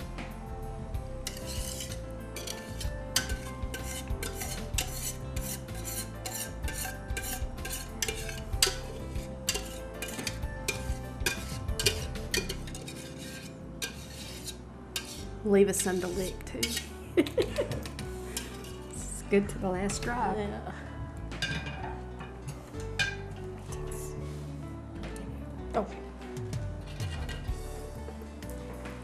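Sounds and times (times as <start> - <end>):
metal utensil scraping a saucepan: 1.2 - 17.0, 17.8 - 19.0, 21.4 - 23.9, 26.8 - 27.8.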